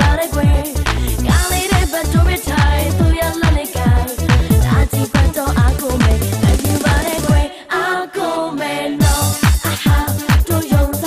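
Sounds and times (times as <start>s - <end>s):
electronic dance-pop music: 0.0s - 11.0s.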